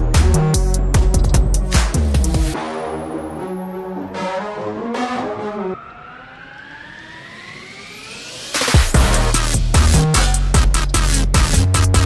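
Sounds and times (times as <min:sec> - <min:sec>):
synth riser: 0:01.9 - 0:11.6.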